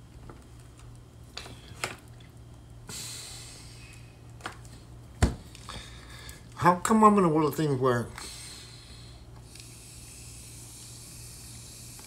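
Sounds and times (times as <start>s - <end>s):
high hiss: 2.8s - 4.2s, 8.1s - 12.0s.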